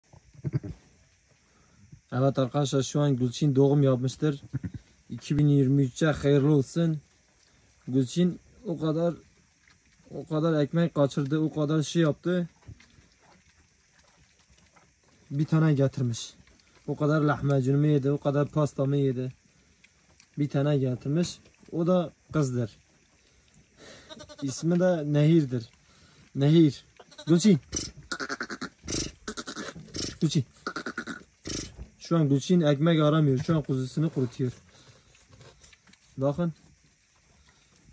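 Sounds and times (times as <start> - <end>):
sheep low guttural rumbling: 27.3 - 31.9.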